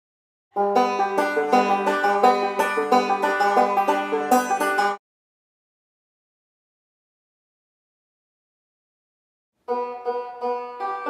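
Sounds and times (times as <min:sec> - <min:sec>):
banjo picking fast notes: 0:00.6 - 0:05.0, 0:09.6 - 0:11.0.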